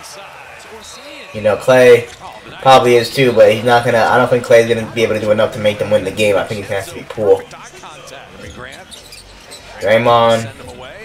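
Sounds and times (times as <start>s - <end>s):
faint broadcast commentary: 0.0s - 11.0s
man's loud voice: 1.3s - 8.7s, 9.8s - 11.0s.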